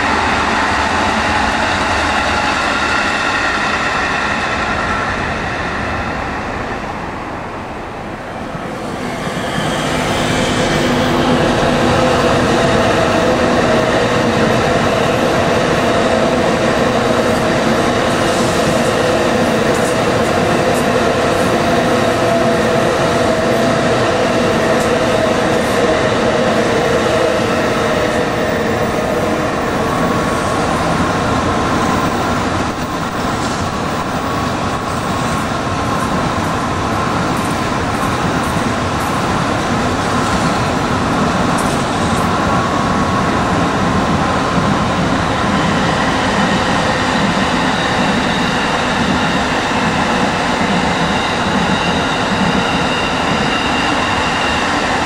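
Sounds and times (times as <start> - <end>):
high-speed train hum and rolling: 0.0 - 55.0.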